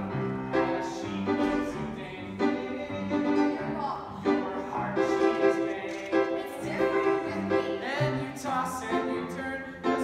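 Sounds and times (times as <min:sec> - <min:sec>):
piano accompaniment: 0:00.0 - 0:10.0.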